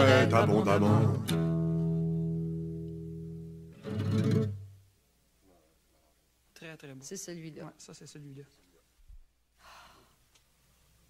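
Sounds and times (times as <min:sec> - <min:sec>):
guitar chords ringing: 0:00.0 - 0:04.8.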